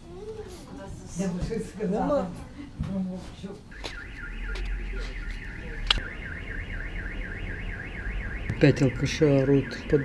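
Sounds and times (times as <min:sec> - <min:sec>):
car alarm siren warbling: 0:03.7 - 0:10.0.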